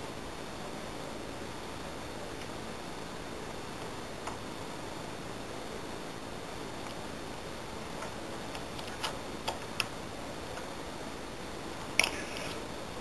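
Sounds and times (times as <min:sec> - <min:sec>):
steady hiss: 0:00.0 - 0:13.0.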